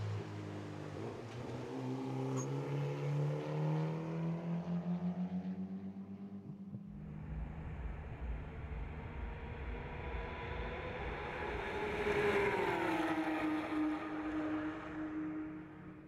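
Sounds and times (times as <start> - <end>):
race car engines passing: 0.0 - 16.0.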